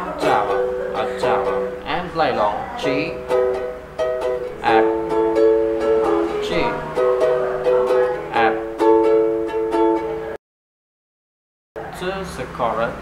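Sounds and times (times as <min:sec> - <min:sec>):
person speaking: 0:00.0 - 0:03.4, 0:04.4 - 0:05.2, 0:06.2 - 0:08.8
ukulele strumming: 0:00.0 - 0:10.4.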